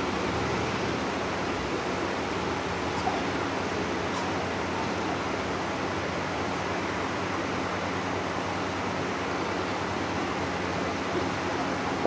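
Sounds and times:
room hiss: 0.0 - 12.0.

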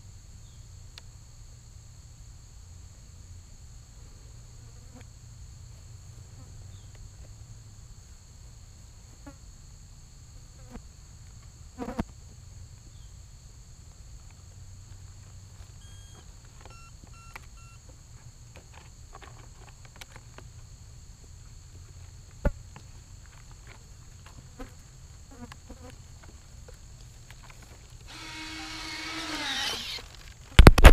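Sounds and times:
insects chorus: 0.0 - 30.9
model aircraft motor whine: 28.0 - 30.9.

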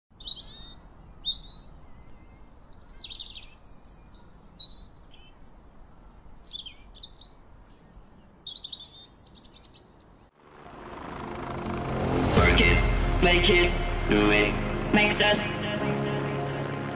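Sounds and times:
songbirds singing: 0.1 - 10.3
broad swelling sound: 10.4 - 16.9.

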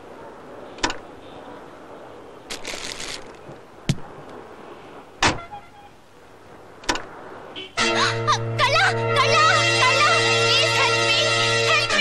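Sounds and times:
car doors shutting: 5.2 - 5.5, 6.8 - 7.1
music with low drone and melody: 7.8 - 12.0.

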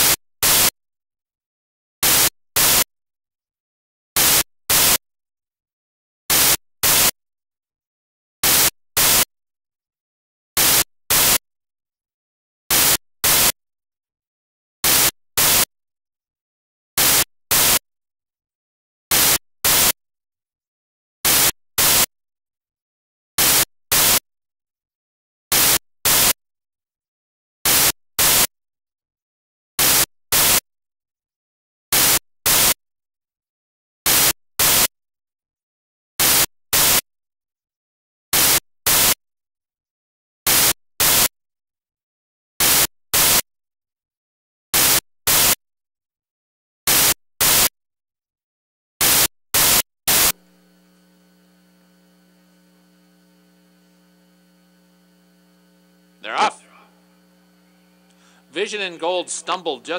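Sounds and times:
static hiss bursts: 49.1 - 59.9.

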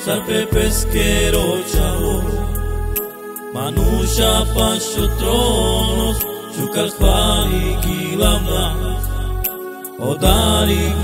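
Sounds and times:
person singing praise song: 0.0 - 11.0
held bass note: 3.8 - 6.2, 10.2 - 11.0.

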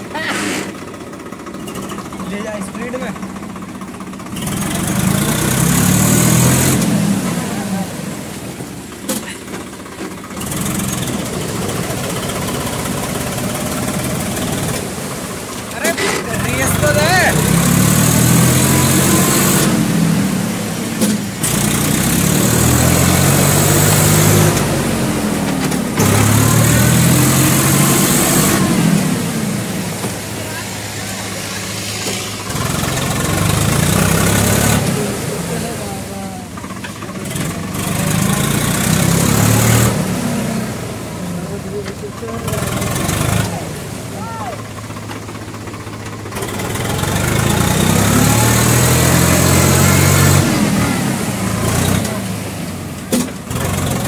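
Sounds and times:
tractor diesel engine revving: 0.0 - 54.0
water churning and splashing: 0.0 - 54.0.

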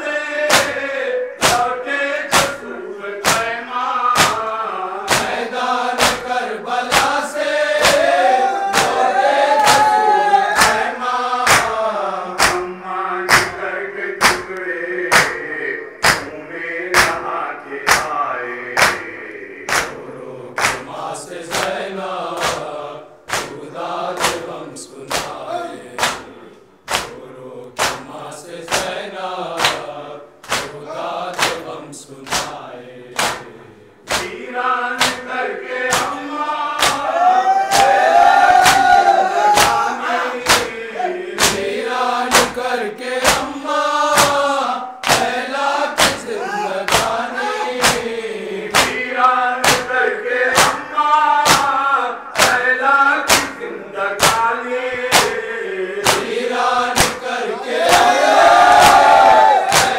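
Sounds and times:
men's chorus chanting: 0.0 - 59.9
hands slapping chests: 0.5 - 0.8, 1.4 - 1.6, 2.3 - 2.6, 3.2 - 3.5, 4.2 - 4.4, 5.1 - 5.4, 6.0 - 11.8, 12.4 - 12.6, 13.3 - 13.6, 14.2 - 15.4, 16.0 - 16.3, 17.0 - 17.2, 17.9 - 18.2, 18.8 - 19.1, 19.7 - 20.0, 20.6 - 20.9, 21.5 - 21.8, 22.4 - 22.7, 23.3 - 23.6, 24.2 - 25.4, 26.0 - 26.3, 26.9 - 28.1, 28.7 - 29.0, 29.6 - 31.7, 32.3 - 32.6, 33.2 - 33.5, 34.1 - 34.4, 35.0 - 36.2, 36.8 - 37.1, 37.7 - 39.0, 39.6 - 40.8, 41.4 - 41.7, 42.3 - 42.6, 43.2 - 43.5, 44.2 - 46.3, 46.9 - 48.1, 48.7 - 49.0, 49.6 - 50.8, 51.4 - 51.8, 52.4 - 52.6, 53.3 - 53.6, 54.2 - 54.5, 55.1 - 55.4, 56.0 - 56.3, 57.0 - 59.9
reciter over loudspeaker: 6.3 - 20.1, 38.6 - 58.1.

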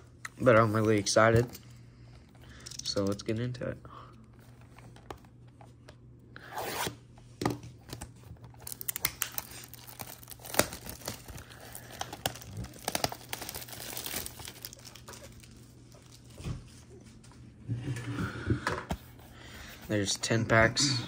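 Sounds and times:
plastic wrap crinkling: 8.4 - 17.2
plastic wrap tearing: 8.6 - 16.3.

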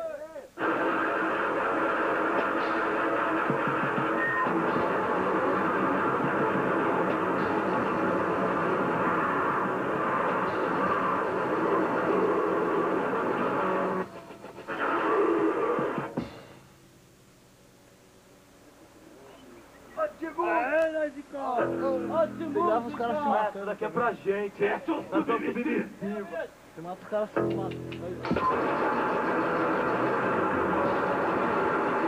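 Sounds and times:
distorted electric guitar noise: 0.6 - 17.2, 21.6 - 23.5, 27.4 - 32.0.

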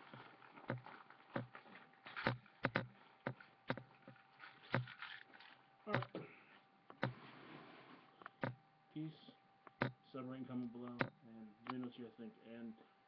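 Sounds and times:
objects tapping and knocking: 0.0 - 6.2, 8.1 - 8.6.

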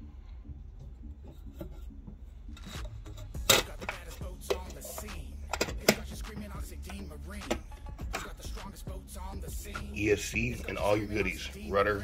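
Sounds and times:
handling rubbing: 0.7 - 8.8.

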